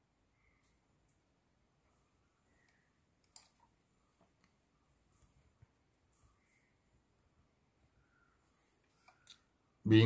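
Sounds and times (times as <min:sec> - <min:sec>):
computer mouse click: 0:02.6 - 0:03.6.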